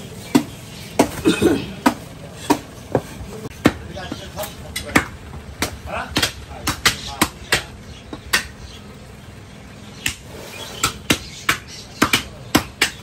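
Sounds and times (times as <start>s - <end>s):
cleaver chopping on wooden block: 0.3s - 8.6s, 10.8s - 13.0s.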